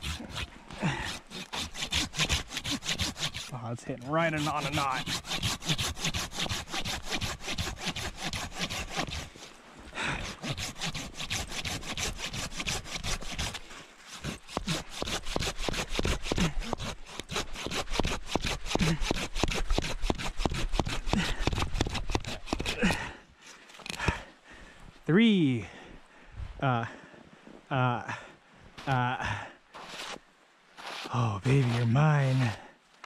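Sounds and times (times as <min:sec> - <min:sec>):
saw cutting through log: 0:00.0 - 0:23.2, 0:29.8 - 0:30.2, 0:30.8 - 0:32.6.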